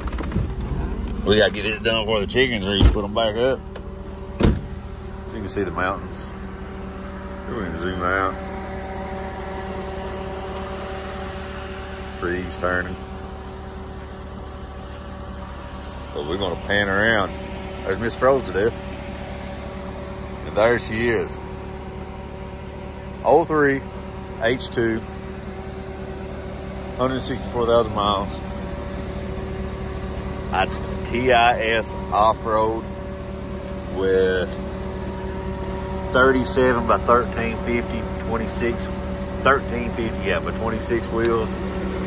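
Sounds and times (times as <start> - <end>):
car engine running hum: 0.0 - 42.0.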